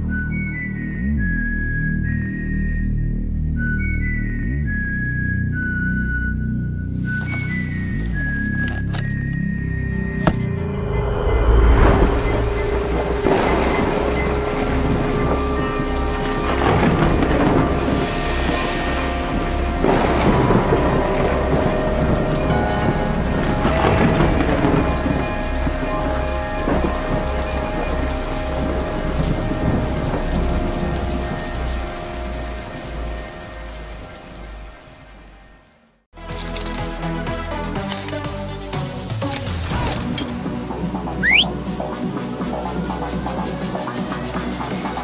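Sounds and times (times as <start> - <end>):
faint music drone: 0.0 - 36.4
heavy rain: 7.0 - 9.2, 11.7 - 45.0
rolls of thunder: 11.6 - 32.9.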